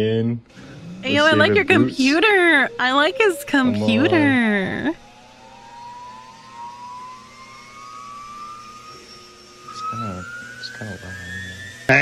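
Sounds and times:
jet engine whine rising: 0.5 - 12.0.

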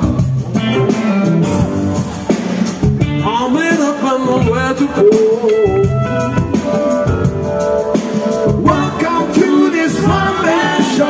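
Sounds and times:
keyboard chords: 0.0 - 11.0
live rock band playing: 0.0 - 11.0.

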